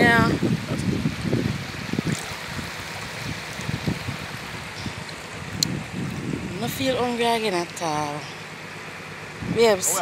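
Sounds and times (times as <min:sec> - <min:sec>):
wind buffeting microphone: 0:00.0 - 0:07.7, 0:09.3 - 0:10.0
river water lapping: 0:01.0 - 0:10.0.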